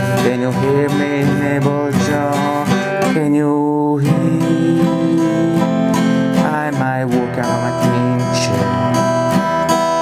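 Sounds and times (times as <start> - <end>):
strummed acoustic guitar: 0.0 - 10.0.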